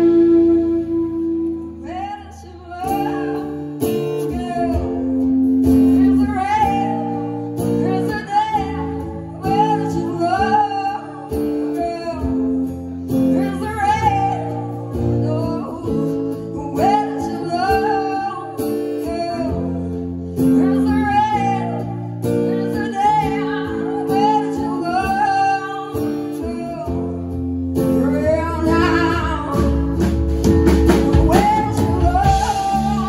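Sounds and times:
live rock band: 0:00.0 - 0:33.0
woman singing: 0:00.0 - 0:33.0.

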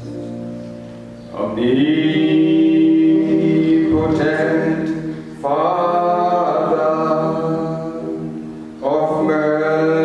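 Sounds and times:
low steady accompaniment: 0:00.0 - 0:10.0
man singing worship song: 0:01.3 - 0:10.0.

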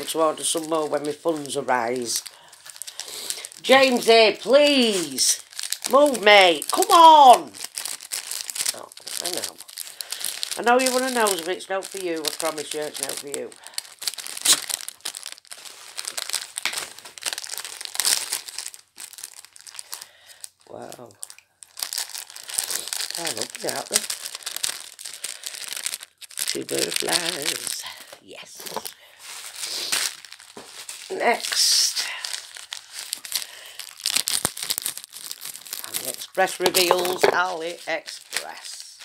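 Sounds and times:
plastic bag crinkling: 0:00.0 - 0:39.0.

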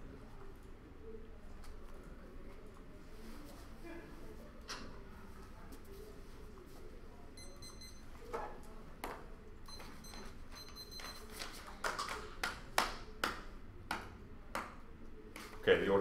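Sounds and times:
faint high electronic beeps: 0:07.3 - 0:08.3, 0:09.7 - 0:11.3.

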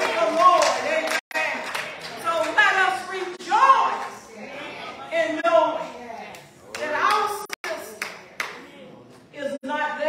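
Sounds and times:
sharp hand claps: 0:06.7 - 0:08.6.

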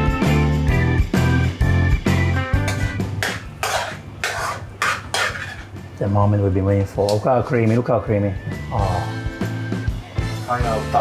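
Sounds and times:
utensil scraping frying pan: 0:02.7 - 0:05.8.

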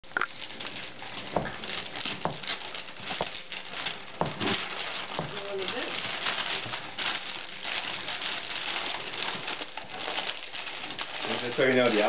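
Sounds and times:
wrapping paper rustling and tearing: 0:00.3 - 0:12.0.

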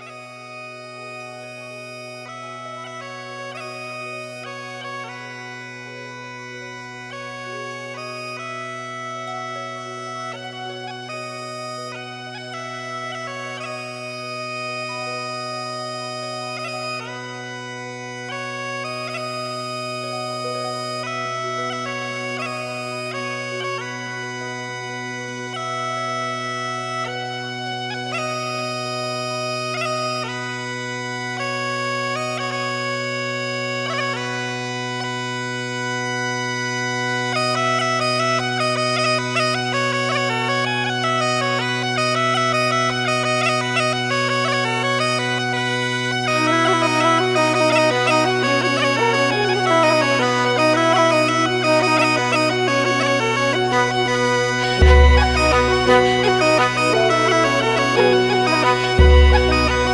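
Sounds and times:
bagpipe melody over drone: 0:00.0 - 0:59.9
lower melody line: 0:00.0 - 0:59.9.

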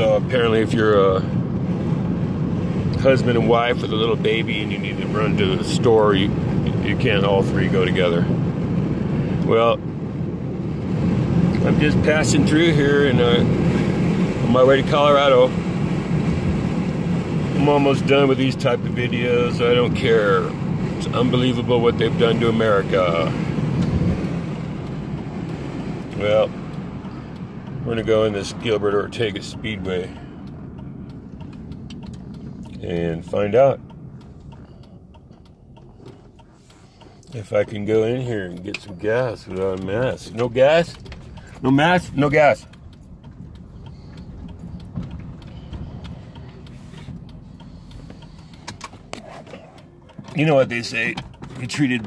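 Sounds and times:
road and engine rumble: 0:00.0 - 0:52.0
light clicks and knocks: 0:29.8 - 0:52.0.

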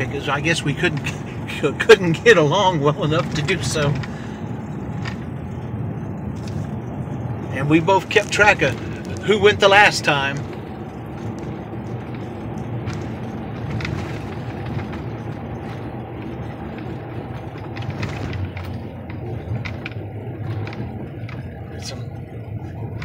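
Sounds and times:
car engine and tyre rumble: 0:00.0 - 0:23.0
faint clicks and rattles: 0:00.0 - 0:23.0.

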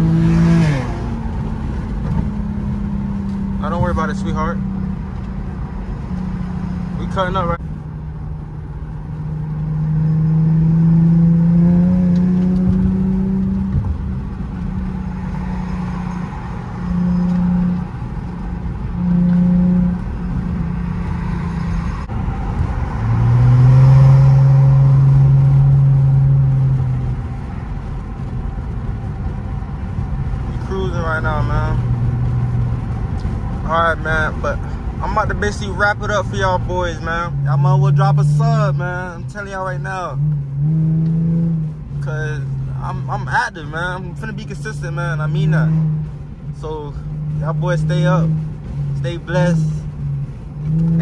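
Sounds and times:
car engine accelerating hard: 0:00.0 - 0:51.0.

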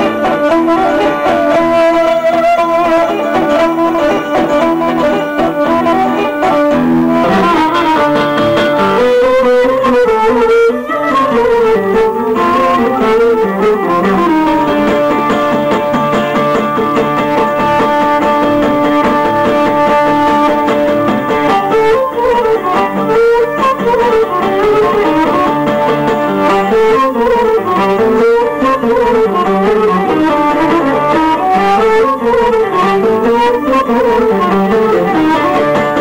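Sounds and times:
strummed acoustic guitar: 0:00.0 - 0:36.0
bowed lyra sliding melody: 0:00.8 - 0:09.6, 0:10.9 - 0:28.5.

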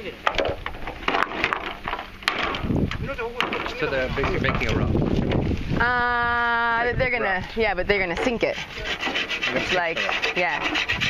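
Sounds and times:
bamboo poles knocking together: 0:00.2 - 0:05.6.

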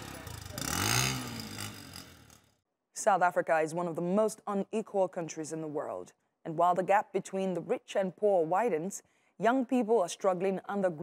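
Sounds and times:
motorcycle riding away: 0:00.0 - 0:02.6.

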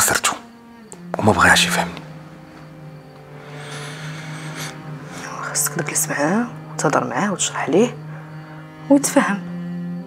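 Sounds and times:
low music drone: 0:00.0 - 0:10.0.

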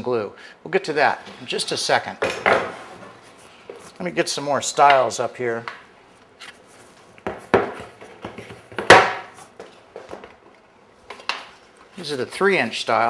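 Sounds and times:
wooden boards knocking together: 0:07.3 - 0:09.3.

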